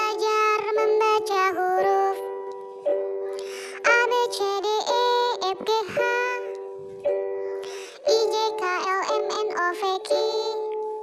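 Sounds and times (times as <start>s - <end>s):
child singing: 0.0s - 2.3s, 3.8s - 6.6s, 8.0s - 10.8s.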